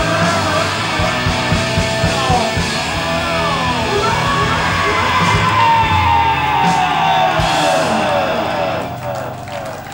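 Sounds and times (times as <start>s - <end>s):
live rock band playing: 0.0s - 9.9s.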